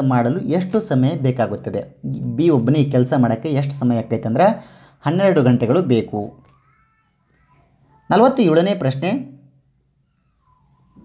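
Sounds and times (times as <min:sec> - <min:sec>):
man speaking: 0:00.0 - 0:06.4, 0:08.1 - 0:09.4.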